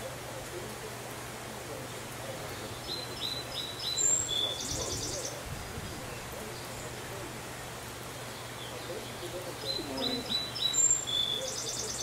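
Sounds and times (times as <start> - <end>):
small birds chirping: 2.2 - 12.0.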